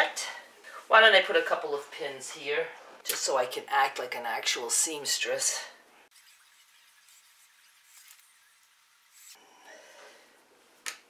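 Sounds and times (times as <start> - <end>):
faint room hiss: 0.0 - 6.1.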